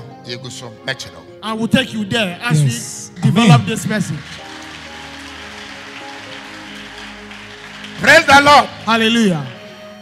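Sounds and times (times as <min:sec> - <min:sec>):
soft music of sustained chords: 0:00.0 - 0:10.0
congregation clapping: 0:03.2 - 0:10.0.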